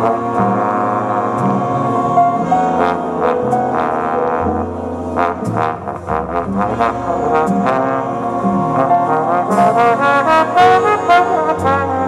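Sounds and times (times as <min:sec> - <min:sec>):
brass jazz band playing chords: 0:00.0 - 0:12.0.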